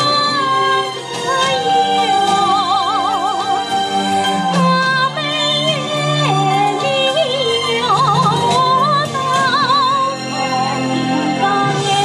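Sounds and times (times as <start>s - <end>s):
amplified backing music: 0.0s - 12.0s
woman singing through microphone: 0.0s - 12.0s.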